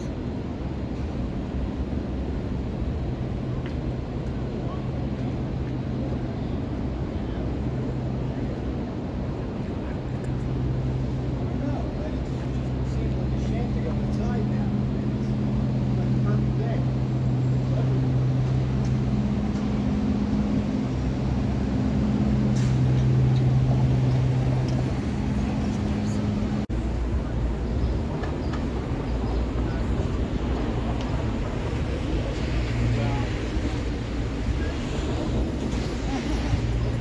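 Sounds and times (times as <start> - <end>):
faint voices of passers-by: 0.0 - 37.0
steady low hum: 0.0 - 37.0.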